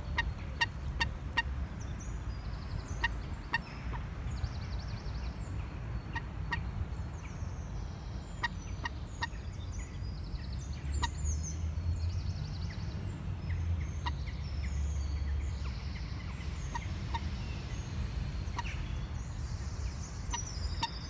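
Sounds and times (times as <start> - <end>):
birds calling: 0.0 - 21.0
songbirds twittering: 0.0 - 21.0.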